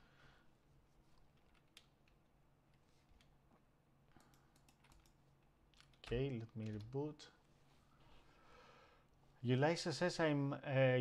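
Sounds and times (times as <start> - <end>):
faint keyboard clicks: 1.2 - 2.2, 4.1 - 7.1.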